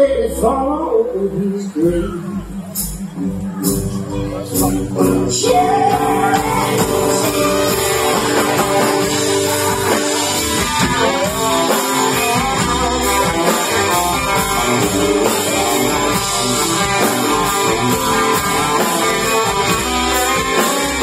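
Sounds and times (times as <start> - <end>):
live band playing instrumental: 0.0 - 21.0.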